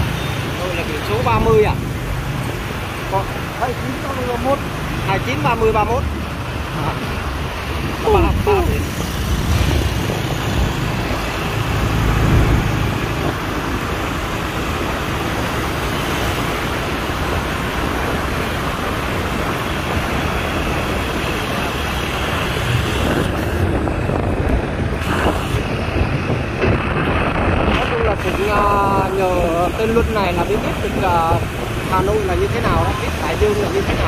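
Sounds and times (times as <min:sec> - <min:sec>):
scooter and car engines running: 0:00.0 - 0:34.0
traffic noise: 0:00.0 - 0:34.0
wind rushing: 0:01.0 - 0:34.0.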